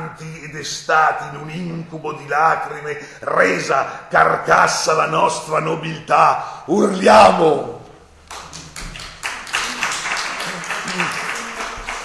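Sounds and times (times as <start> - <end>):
audience applause: 8.3 - 12.0.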